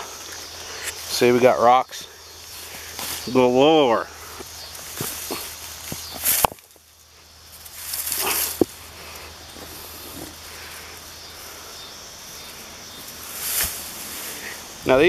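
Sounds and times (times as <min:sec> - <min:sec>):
faint steady hiss: 0:00.0 - 0:15.0
footsteps through dry grass: 0:02.3 - 0:03.6.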